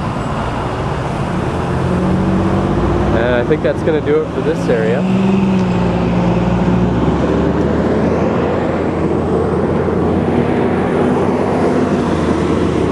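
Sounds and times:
road traffic noise: 0.0s - 12.9s
vehicle engines humming: 0.0s - 12.9s.

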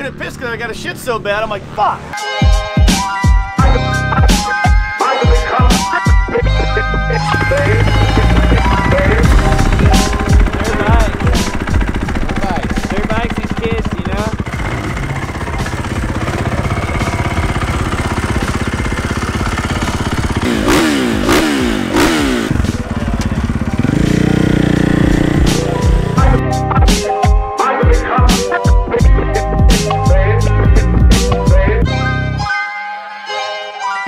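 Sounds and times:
dirt bike engine revving: 7.2s - 26.4s.

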